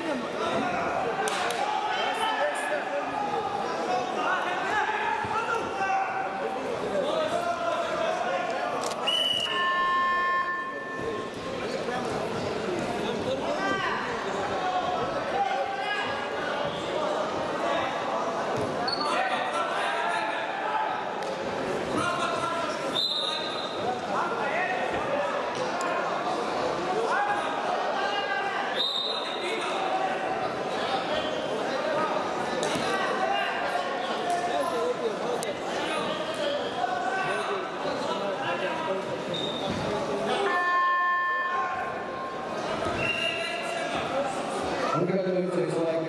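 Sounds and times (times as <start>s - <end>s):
people shouting in echoing hall: 0.0s - 8.6s, 40.1s - 45.0s
voices in a sports hall: 0.0s - 46.0s.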